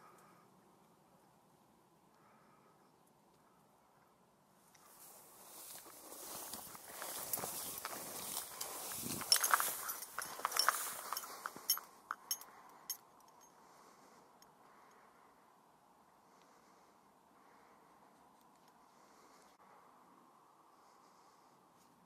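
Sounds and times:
rustling: 4.8s - 12.4s.

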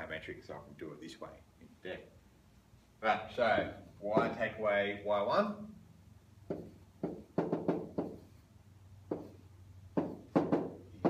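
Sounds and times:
faint steady hum: 0.0s - 11.0s
pen tapping on whiteboard: 6.4s - 8.3s, 9.1s - 11.0s.

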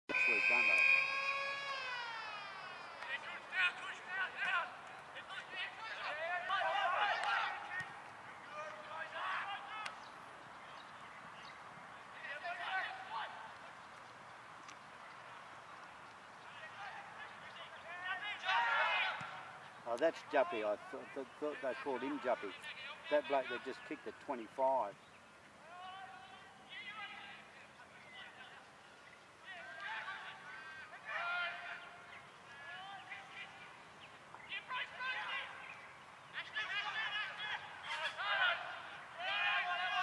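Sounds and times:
voices calling out: 0.0s - 11.0s, 15.1s - 40.0s
siren winding down: 0.1s - 3.0s.

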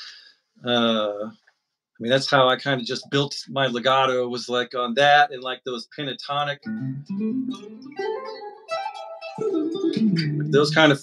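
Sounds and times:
clean electric guitar legato notes: 6.7s - 11.0s.

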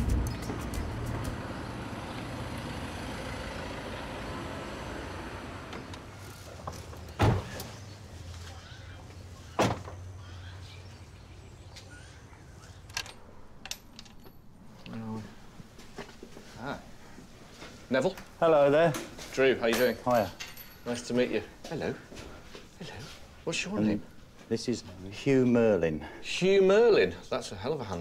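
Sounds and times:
van engine rumbling: 0.0s - 10.6s.

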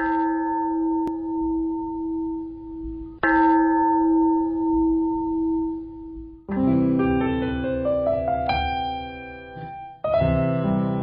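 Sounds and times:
bell ringing: 3.2s - 6.2s.

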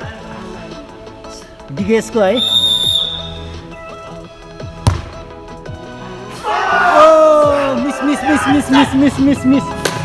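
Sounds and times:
background music: 0.0s - 10.0s
football kick thump: 4.8s - 5.3s.

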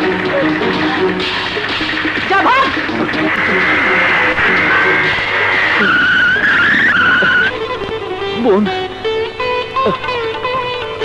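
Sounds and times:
motorcycle tyres squealing: 5.7s - 7.6s.

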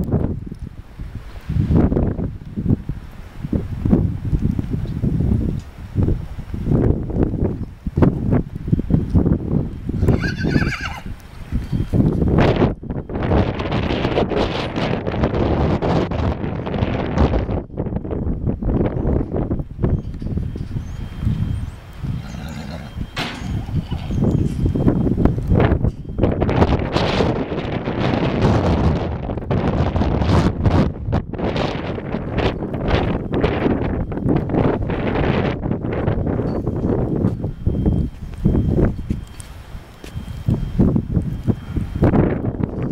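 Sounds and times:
wind rumble on microphone: 0.0s - 42.9s
horse whinnying: 10.0s - 11.1s, 22.2s - 24.2s.

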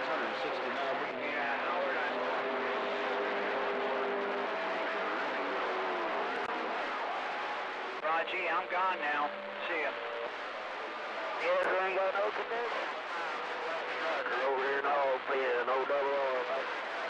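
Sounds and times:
faint garbled radio voices: 0.0s - 17.0s
radio static hiss: 8.0s - 17.0s.

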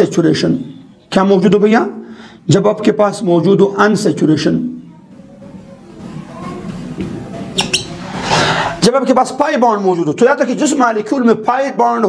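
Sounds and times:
marker squeaking on whiteboard: 5.3s - 8.8s
marker scratching on whiteboard: 6.0s - 8.8s.

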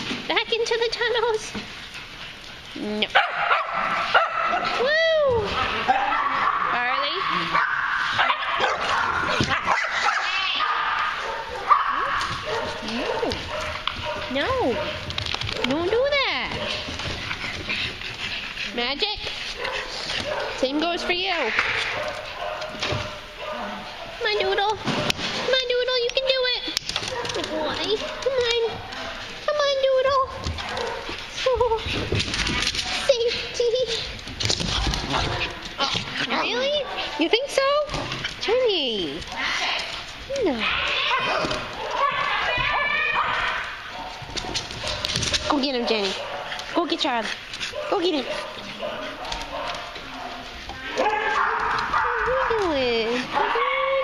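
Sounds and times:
dogs barking and yipping: 1.0s - 54.0s.

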